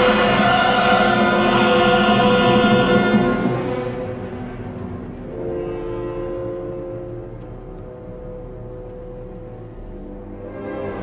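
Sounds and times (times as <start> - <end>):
choir and orchestra passage: 0.0 - 11.0
orchestra soft sustained chord: 0.0 - 11.0.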